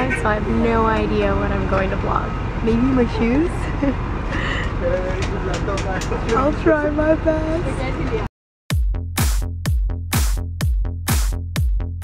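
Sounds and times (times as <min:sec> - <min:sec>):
coach engine rumble inside cabin: 0:00.0 - 0:08.3.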